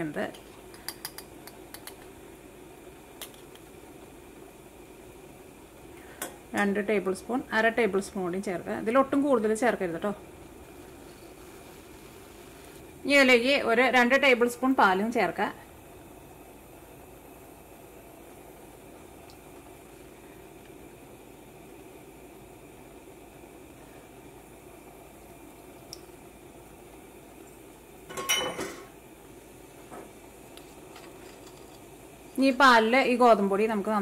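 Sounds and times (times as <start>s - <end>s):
room hum: 0.0s - 34.0s.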